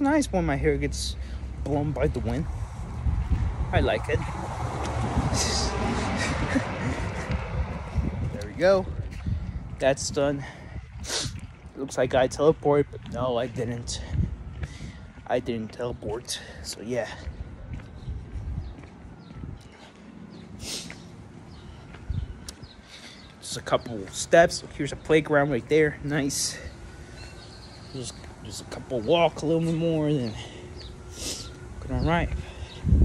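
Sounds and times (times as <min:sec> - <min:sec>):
wind buffeting microphone: 0:00.0 - 0:33.0
footsteps walking: 0:05.8 - 0:09.9, 0:10.8 - 0:25.1, 0:26.6 - 0:32.5.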